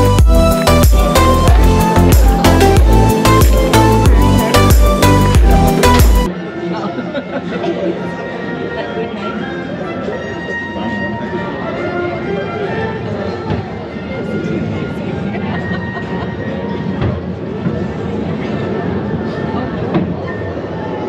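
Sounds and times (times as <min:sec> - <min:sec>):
music with held notes: 0:00.0 - 0:17.2
chatter of passengers: 0:00.0 - 0:21.0.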